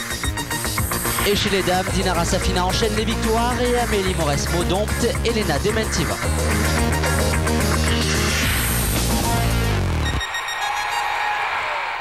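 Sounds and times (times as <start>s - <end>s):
electronic theme music: 0.0s - 11.9s.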